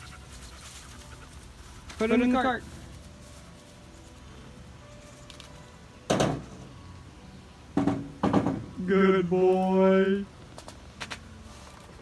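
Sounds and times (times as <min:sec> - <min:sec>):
palm fronds thunking into cargo bed: 0:06.1 - 0:06.6, 0:07.8 - 0:08.8.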